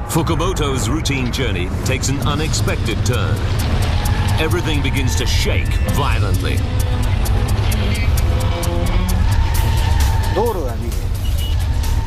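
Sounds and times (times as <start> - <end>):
deep earthquake rumble: 0.0 - 12.0
dramatic music: 0.0 - 12.0
rapid rattling and knocking: 1.2 - 12.0.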